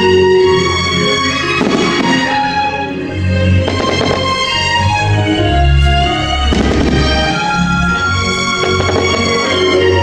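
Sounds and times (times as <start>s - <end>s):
fireworks show music: 0.0s - 10.0s
firework shell bursting: 3.6s - 4.4s, 6.5s - 7.4s, 8.5s - 9.8s
crackle of firework sparks: 8.6s - 9.7s.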